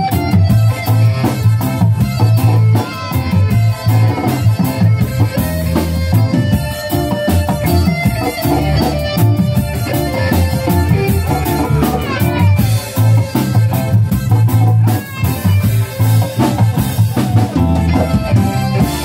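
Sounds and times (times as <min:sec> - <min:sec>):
bass guitar: 0:00.0 - 0:19.0
drum kit: 0:00.0 - 0:19.0
electric guitar: 0:00.0 - 0:19.0
keyboard: 0:00.0 - 0:19.0.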